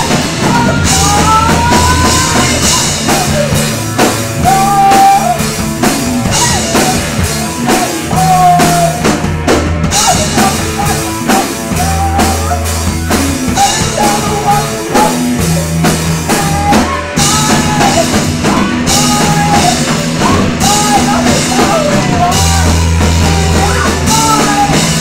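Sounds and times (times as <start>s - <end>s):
drum kit beat: 0.0s - 25.0s
rock band playing live: 0.0s - 25.0s.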